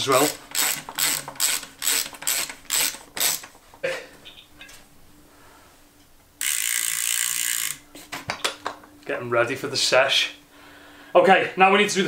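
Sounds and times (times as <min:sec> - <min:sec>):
bicycle hub ratchet clicking: 0:00.0 - 0:03.5, 0:06.4 - 0:07.8
steady high buzz: 0:00.0 - 0:12.0.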